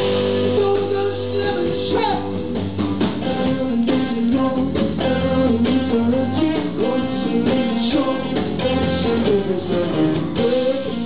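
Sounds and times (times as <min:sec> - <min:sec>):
bass guitar: 0:00.0 - 0:11.0
drum kit beat: 0:00.0 - 0:11.0
electric guitar melody: 0:00.0 - 0:11.0.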